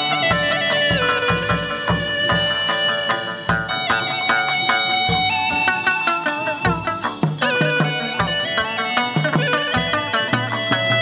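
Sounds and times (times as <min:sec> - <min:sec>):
irregular drum strokes: 0:00.0 - 0:11.0
reedy sliding melody: 0:00.0 - 0:11.0.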